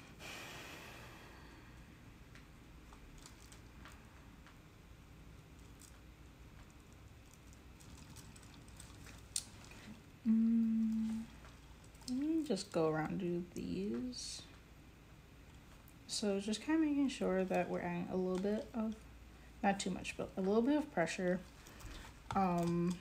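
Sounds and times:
woman humming: 10.2 - 11.3.

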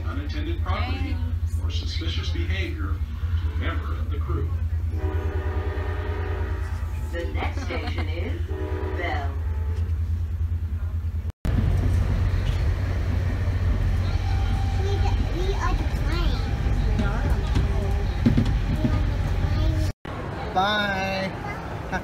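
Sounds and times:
train coach rumbling: 0.0 - 22.0
train horn: 4.9 - 7.2, 8.5 - 10.1, 14.1 - 15.1.

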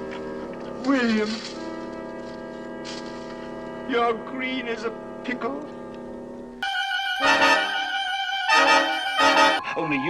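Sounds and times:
sustained music chord: 0.0 - 9.8.

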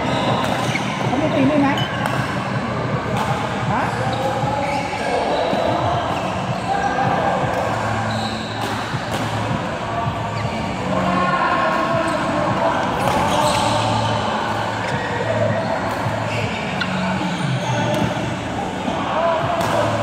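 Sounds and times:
players' voices: 0.0 - 20.0
shoes squeaking on floor: 0.0 - 20.0
racket hitting shuttlecock: 8.6 - 9.6, 19.6 - 20.0.

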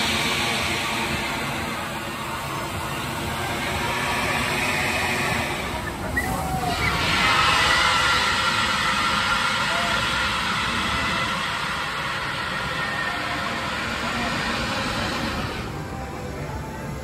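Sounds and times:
roller coaster rushing roar: 0.0 - 17.0.

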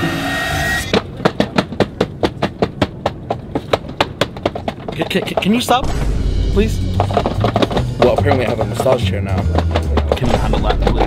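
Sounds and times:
kicking seat thuds: 5.8 - 11.0.

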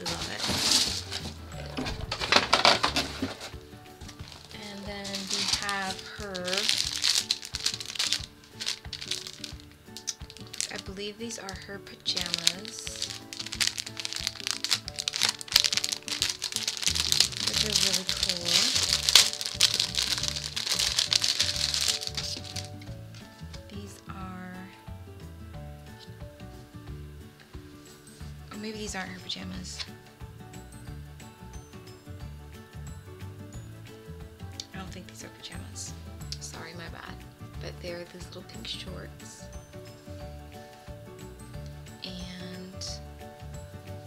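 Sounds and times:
plastic bag crinkling: 0.0 - 23.3
background music: 0.0 - 44.0.

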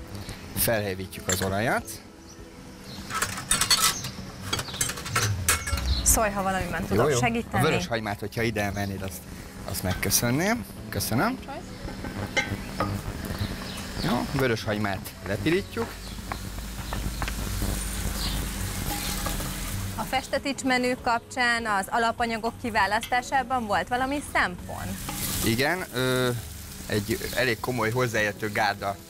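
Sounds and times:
utensils clinking against bowls: 1.2 - 1.7, 3.0 - 6.0
onion sizzling in hot oil: 2.9 - 21.2, 21.8 - 29.0
steady low rumble: 5.0 - 7.8.

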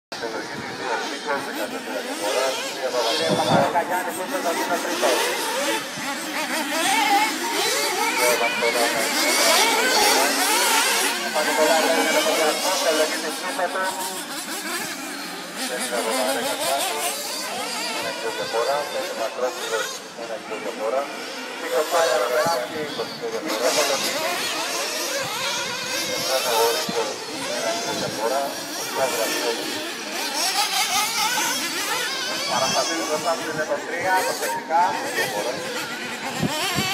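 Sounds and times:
model car engines whining: 0.2 - 36.9.

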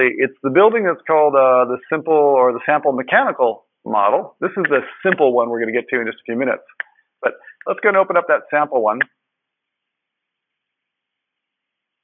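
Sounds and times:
person speaking: 0.0 - 9.2.

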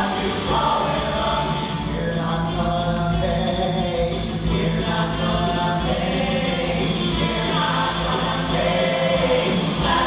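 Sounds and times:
cast singing as an ensemble: 0.0 - 10.0
live band: 0.0 - 10.0.

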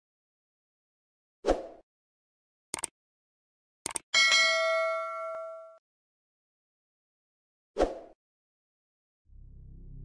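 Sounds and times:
notification bell ding: 4.2 - 5.8.

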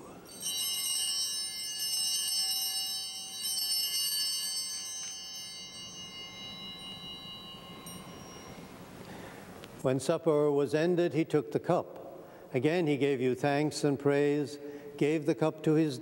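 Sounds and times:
altar bells ringing: 0.1 - 9.6.

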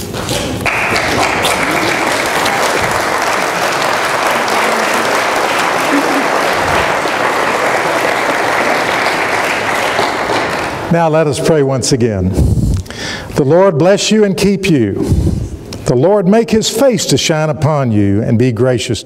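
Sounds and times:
guests applauding: 0.6 - 10.9.

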